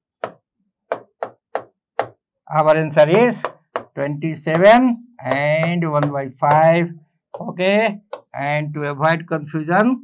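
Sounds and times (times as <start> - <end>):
taps on touchscreen glass: 0.2 - 2.3, 3.1 - 8.4.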